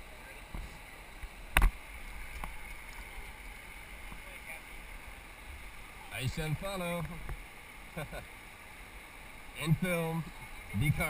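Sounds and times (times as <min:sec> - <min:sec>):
river water rushing: 0:00.0 - 0:11.0.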